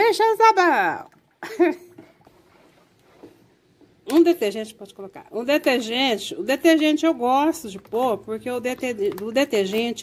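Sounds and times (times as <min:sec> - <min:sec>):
wooden spoon stirring liquid: 0:00.8 - 0:04.3, 0:05.0 - 0:10.0.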